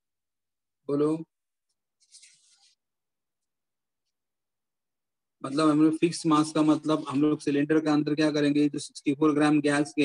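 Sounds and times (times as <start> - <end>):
paper page turning: 2.0 - 2.8.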